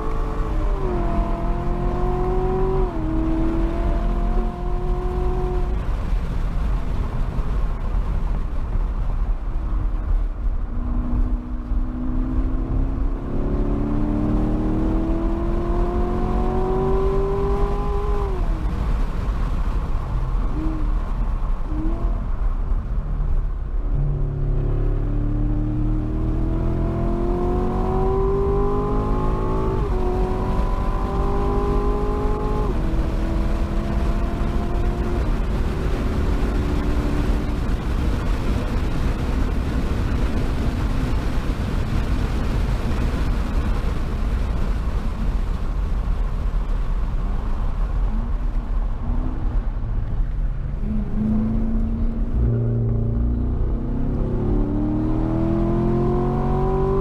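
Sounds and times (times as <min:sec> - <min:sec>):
car engine revving through gears: 0:00.0 - 0:06.1, 0:10.7 - 0:19.1, 0:23.9 - 0:41.7, 0:49.0 - 0:57.0
road and tyre rumble: 0:00.0 - 0:57.0.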